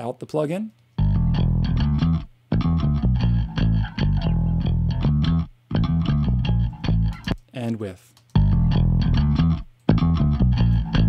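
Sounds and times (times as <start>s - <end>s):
electric bass line: 1.0s - 7.4s, 8.4s - 11.0s.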